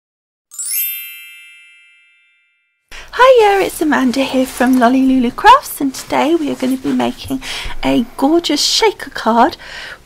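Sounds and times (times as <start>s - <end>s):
bright shimmering chime: 0.5s - 2.9s.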